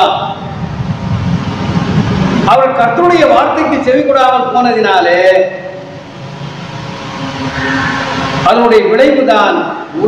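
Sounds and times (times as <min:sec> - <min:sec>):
steady rushing noise: 0:00.0 - 0:10.0
low rumble: 0:00.2 - 0:03.0.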